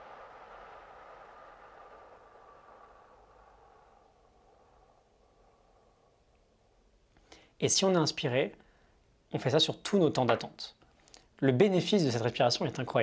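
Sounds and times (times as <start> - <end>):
slow breathy exhale: 0.0 - 7.6.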